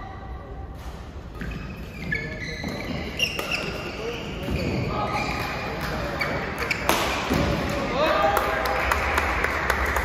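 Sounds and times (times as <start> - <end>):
shoes squeaking on court floor: 0.8 - 7.6
rackets striking shuttlecock: 5.4 - 7.6.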